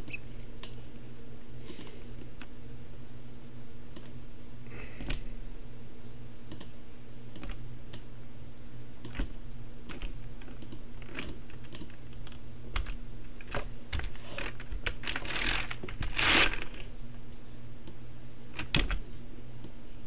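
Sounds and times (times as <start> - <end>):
low steady hum: 0.0 - 20.0
keyboard and mouse clicks: 1.7 - 2.0, 4.0 - 4.2, 6.5 - 8.1, 9.0 - 16.1, 18.6 - 19.0.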